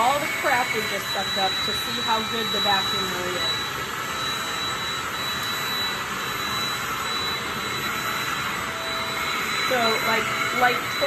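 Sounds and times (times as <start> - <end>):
stick vacuum running on wood floor: 0.0 - 11.0.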